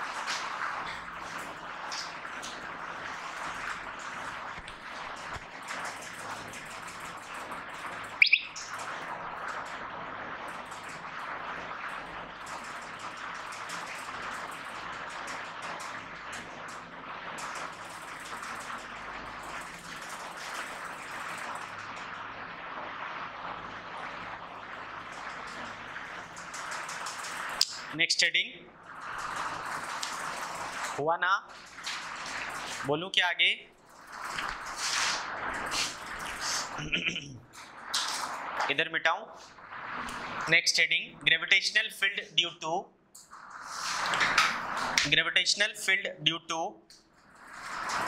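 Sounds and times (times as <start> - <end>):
steady hiss: 10.2 - 42.6, 43.4 - 46.1.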